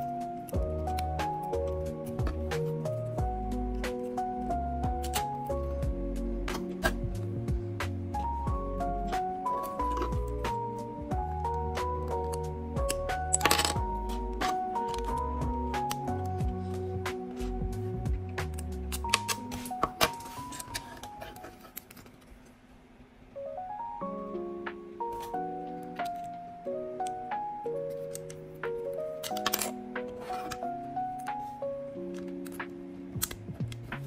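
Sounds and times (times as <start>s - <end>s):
background music with beat: 0.0s - 21.2s, 32.3s - 34.0s.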